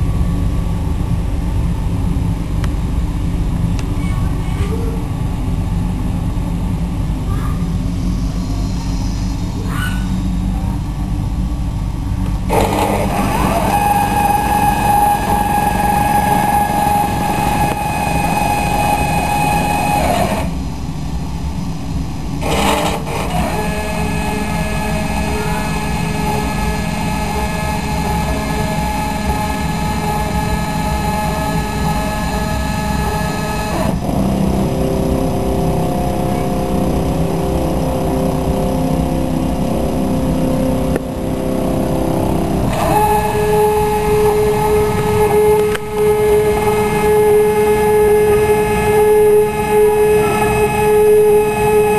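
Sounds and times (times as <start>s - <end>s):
stepper motors whining: 6.2s - 51.9s.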